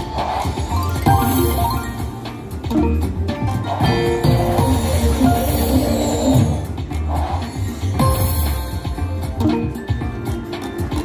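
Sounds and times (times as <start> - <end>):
slot machine music: 0.0 - 11.0
slot machine reels spinning: 0.4 - 2.5, 4.0 - 6.7.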